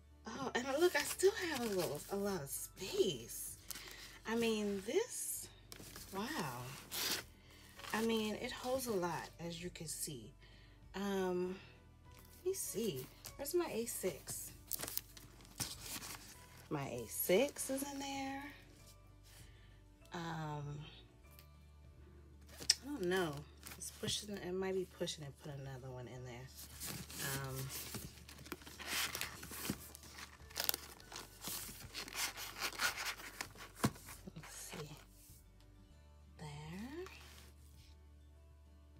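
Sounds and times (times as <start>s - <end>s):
woman speaking: 0.3s - 3.6s, 4.2s - 5.5s, 6.1s - 6.8s, 7.9s - 10.4s, 11.0s - 11.7s, 12.4s - 14.6s, 16.7s - 18.6s, 20.1s - 21.0s, 22.7s - 26.5s, 27.1s - 27.8s, 34.3s - 35.1s, 36.4s - 37.4s
paper rustling in a fabric bag: 0.7s - 5.1s, 5.7s - 8.9s, 14.1s - 17.9s, 26.5s - 35.2s.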